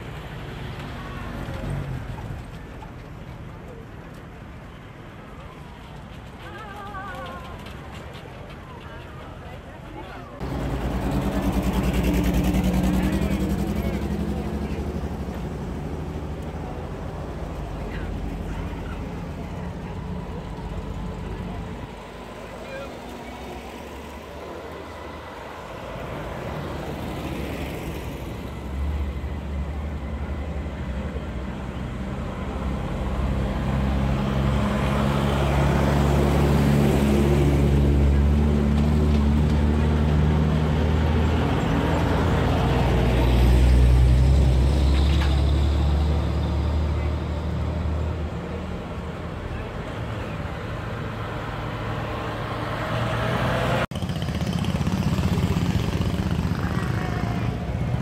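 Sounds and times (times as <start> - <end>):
heavy truck engine rumble: 0.0 - 58.0
military vehicle engines passing: 0.0 - 58.0.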